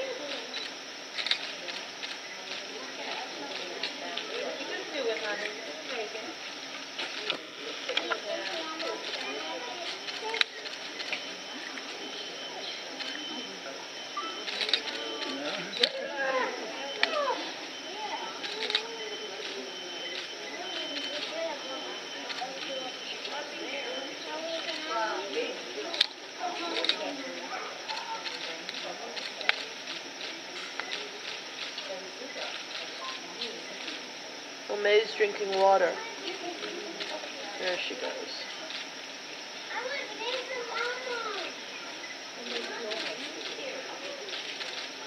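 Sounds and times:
crowd chatter: 0:00.0 - 0:45.0.

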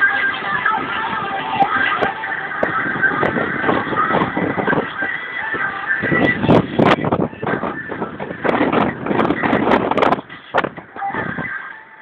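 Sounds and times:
car cabin noise in traffic: 0:00.0 - 0:12.0
faint car stereo music: 0:00.0 - 0:12.0.

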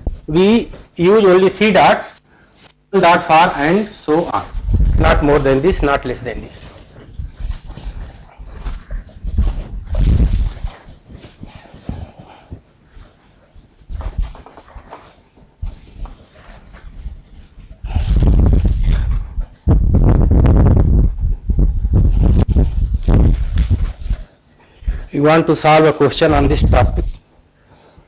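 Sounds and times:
microphone handling noise: 0:00.0 - 0:01.0, 0:02.6 - 0:13.1, 0:13.7 - 0:25.1, 0:26.4 - 0:27.2
duster rubbing on whiteboard: 0:02.8 - 0:19.6.

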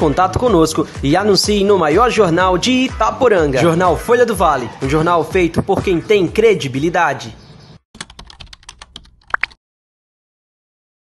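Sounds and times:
typing-like clicks: 0:08.0 - 0:09.6.

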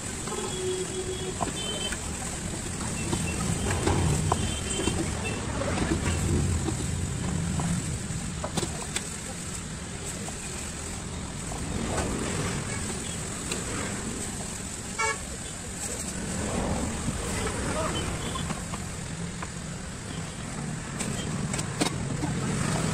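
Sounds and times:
street traffic rumble: 0:00.0 - 0:22.9
vehicle horn toot: 0:00.3 - 0:02.0, 0:15.0 - 0:15.2.

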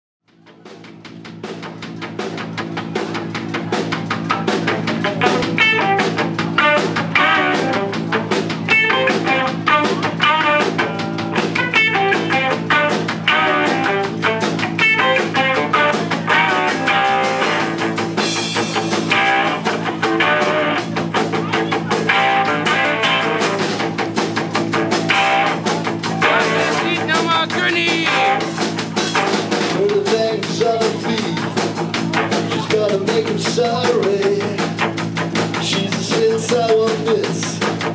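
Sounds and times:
drum kit steady beat: 0:00.3 - 0:37.9
electric bass: 0:00.3 - 0:37.9
electric guitar: 0:00.4 - 0:37.9.

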